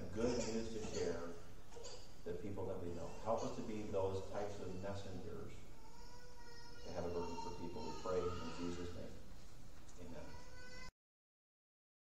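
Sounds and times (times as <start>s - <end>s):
room sound: 0.0s - 10.9s.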